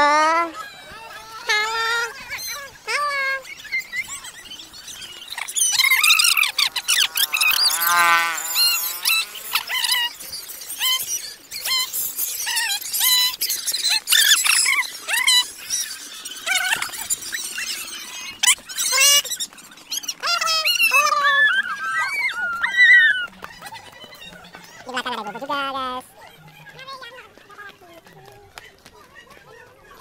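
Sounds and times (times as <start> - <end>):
children shouting and squealing: 0.0 - 30.0.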